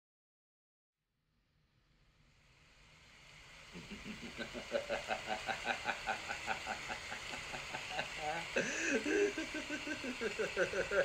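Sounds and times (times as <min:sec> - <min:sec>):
person laughing in quick pulses: 0:03.8 - 0:11.0.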